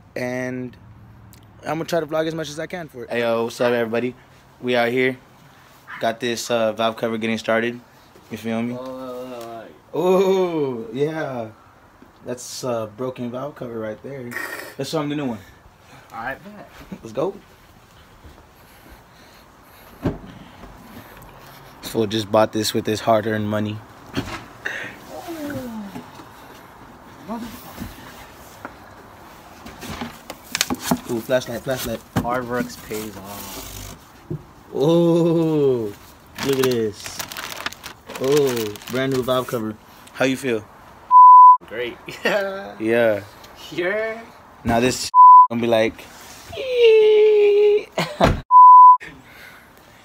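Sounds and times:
high-pitched censor bleep: 41.1 - 41.6, 45.2 - 45.5, 48.5 - 49.0.

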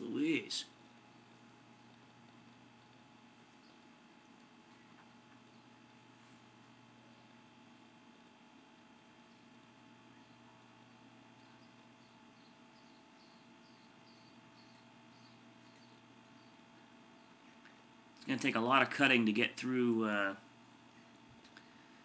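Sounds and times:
faint background hum and hiss: 0.0 - 22.0.

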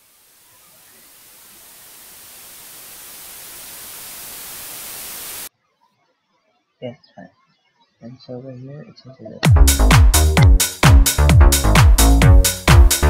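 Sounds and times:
white-noise riser: 0.0 - 5.5.

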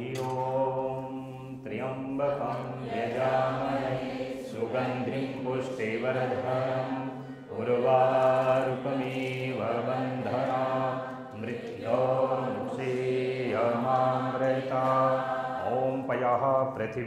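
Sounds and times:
person chanting a mantra: 0.0 - 17.0.

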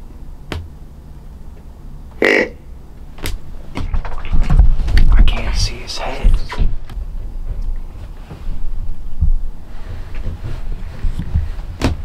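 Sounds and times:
deer grunt call: 2.2 - 2.7.

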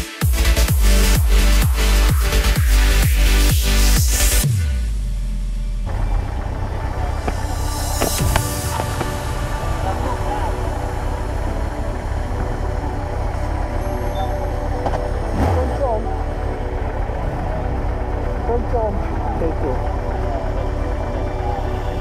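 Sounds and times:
motorcycle engine rumbling: 0.3 - 22.0
people's voices: 6.3 - 14.5, 15.3 - 22.0.

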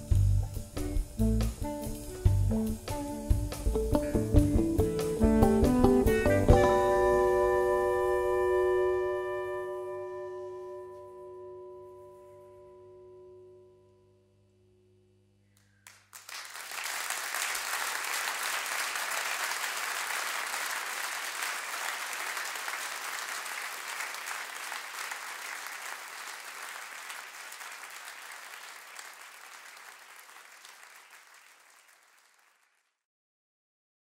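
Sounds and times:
band held notes: 0.0 - 11.6
audience applauding: 15.6 - 32.9.

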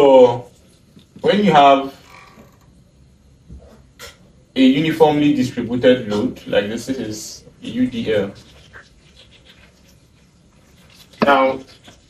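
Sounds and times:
marker squeaking on whiteboard: 8.0 - 12.0.

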